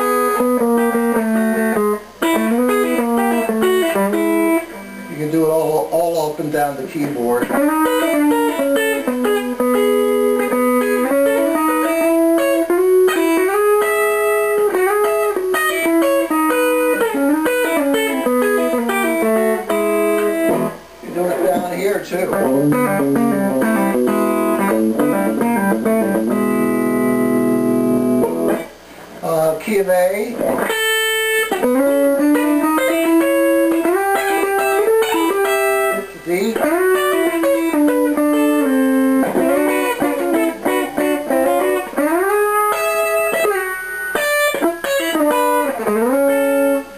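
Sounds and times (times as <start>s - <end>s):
electric guitar country lick: 0.0s - 46.9s.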